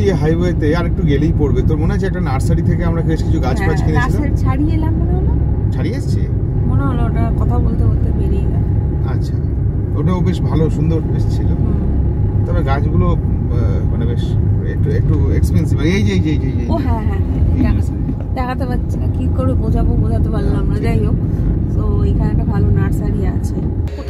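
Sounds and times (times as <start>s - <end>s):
people talking: 0.0s - 9.4s, 10.0s - 11.9s, 12.5s - 24.0s
car driving rumble: 0.0s - 24.0s.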